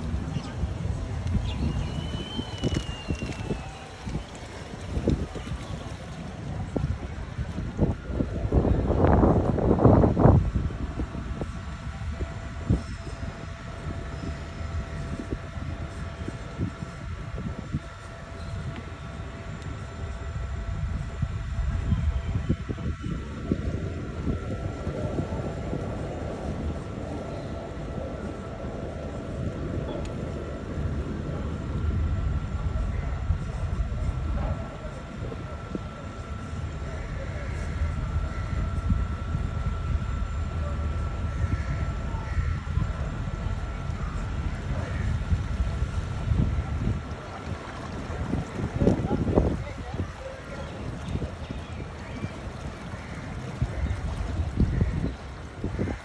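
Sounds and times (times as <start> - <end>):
boat motor rumbling: 0.0 - 56.0.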